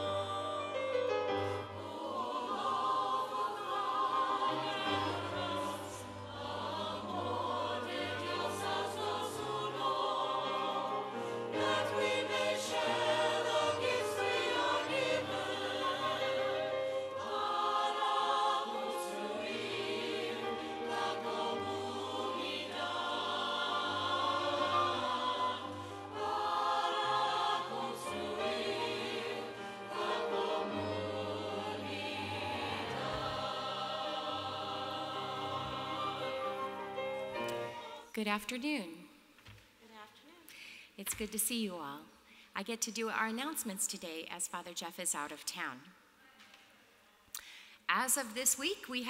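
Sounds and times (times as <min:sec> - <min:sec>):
church choir singing: 0:00.0 - 0:38.2.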